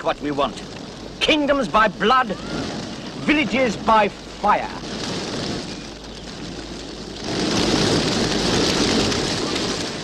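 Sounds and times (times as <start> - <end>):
fire crackling: 0.0 - 10.0.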